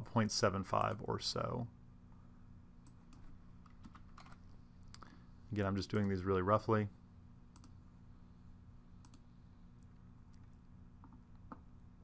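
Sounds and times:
faint keyboard typing: 2.8 - 5.1, 5.9 - 6.3, 7.5 - 7.8, 9.0 - 11.7.

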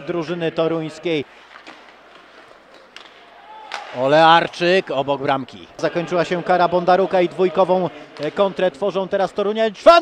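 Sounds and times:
hockey sticks and puck clicking: 1.3 - 4.6, 8.1 - 8.5.

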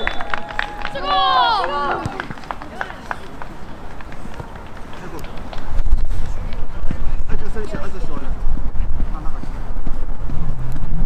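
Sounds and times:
young players calling: 0.0 - 3.8.

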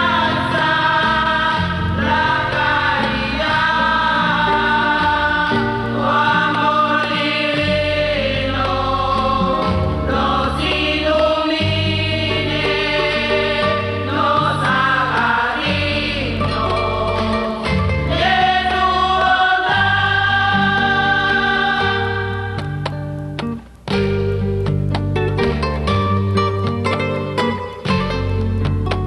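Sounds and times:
women's choir singing hymn: 0.0 - 22.9
instrumental accompaniment: 0.0 - 29.0
low bass notes: 0.0 - 29.0.

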